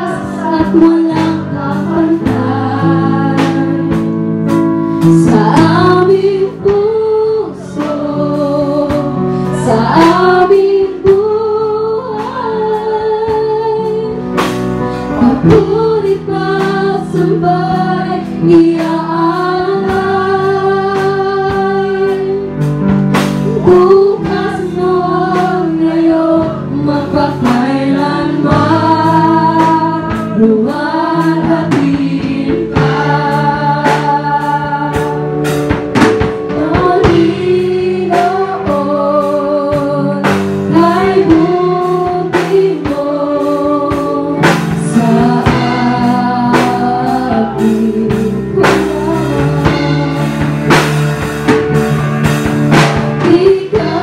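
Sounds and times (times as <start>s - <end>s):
woman singing: 0.0s - 4.1s, 5.0s - 14.3s, 15.0s - 22.6s, 23.5s - 35.5s, 36.5s - 50.6s, 53.2s - 54.0s
live band playing: 0.0s - 54.0s
drum hits: 27.4s - 39.2s, 43.9s - 54.0s.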